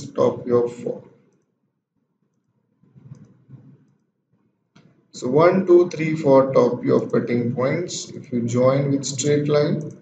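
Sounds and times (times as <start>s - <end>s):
computer mouse clicking: 2.2s - 5.0s, 9.7s - 10.0s.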